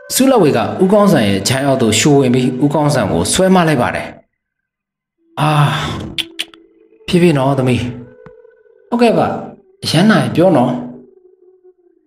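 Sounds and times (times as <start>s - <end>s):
person sighing: 5.4s - 6.6s.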